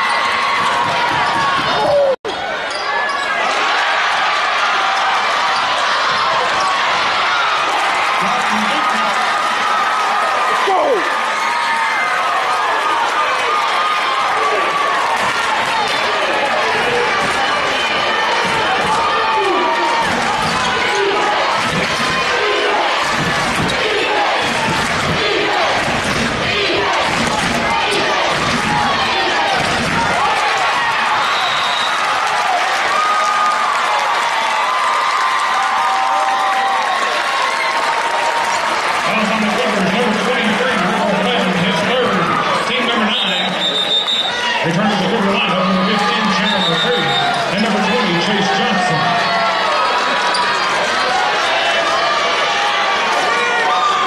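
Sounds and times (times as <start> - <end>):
crowd chatter and shouts: 0.0 - 54.0.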